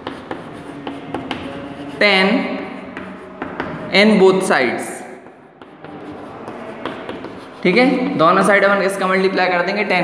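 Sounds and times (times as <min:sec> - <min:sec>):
chalk tapping and scratching: 0:00.0 - 0:10.0.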